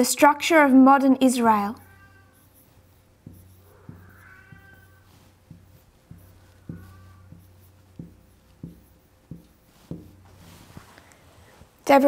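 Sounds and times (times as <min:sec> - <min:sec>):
marker tapping on whiteboard: 0:01.8 - 0:10.9.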